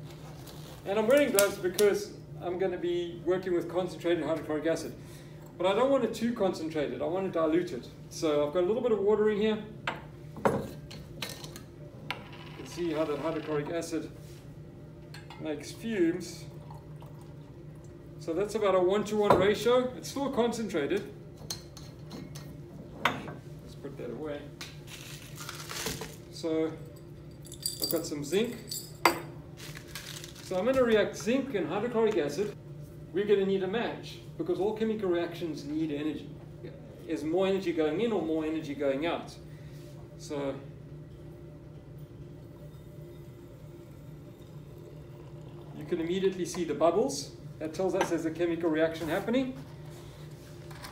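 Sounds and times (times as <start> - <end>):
low room hum: 0.0 - 50.9
glassware clinking: 27.4 - 29.3.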